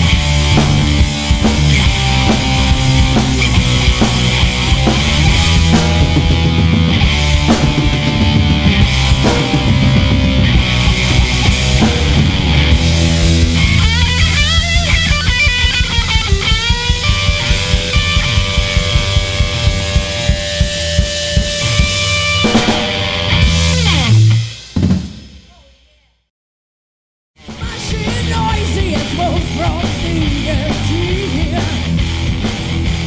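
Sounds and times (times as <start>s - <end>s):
rock band playing: 0.0s - 25.7s, 27.4s - 33.0s
final hit ringing out: 7.3s - 20.7s.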